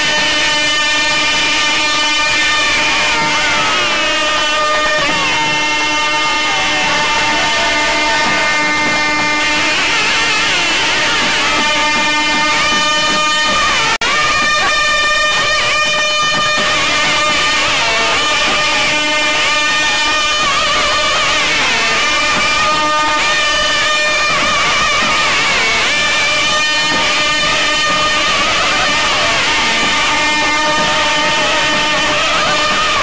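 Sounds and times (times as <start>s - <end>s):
double-reed pipes melody: 0.0s - 33.0s
drums beating: 0.0s - 33.0s
held drone: 0.0s - 33.0s.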